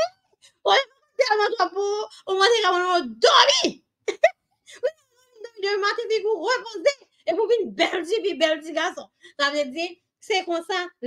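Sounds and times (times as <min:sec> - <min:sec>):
woman preaching: 0:00.0 - 0:11.0.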